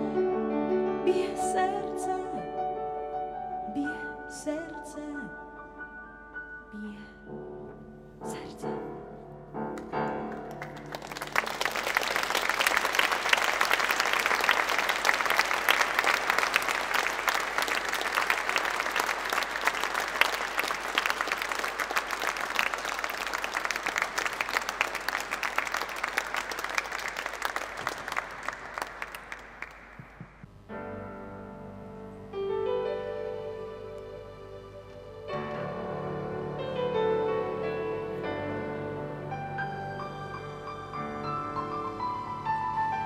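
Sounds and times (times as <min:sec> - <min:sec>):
piano notes: 0:00.0 - 0:11.5, 0:30.4 - 0:43.0
audience applauding: 0:10.3 - 0:30.4.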